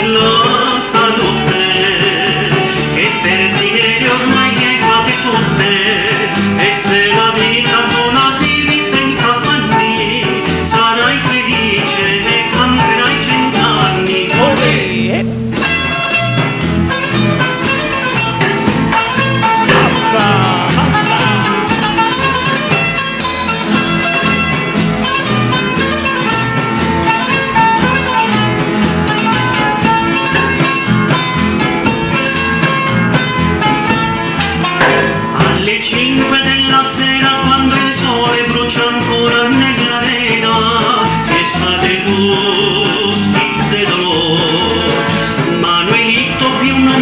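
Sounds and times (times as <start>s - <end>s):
band music with guitars: 0.0s - 47.0s
steady bass beat: 14.4s - 15.4s, 19.7s - 21.6s.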